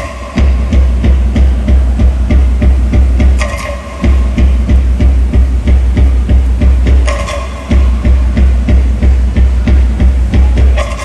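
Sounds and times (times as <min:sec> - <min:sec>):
heavy low drum beat: 0:00.0 - 0:11.0.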